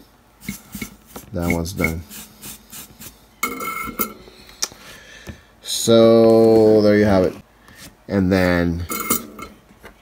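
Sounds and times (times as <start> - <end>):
tools rubbing and scraping: 0.4 - 4.5.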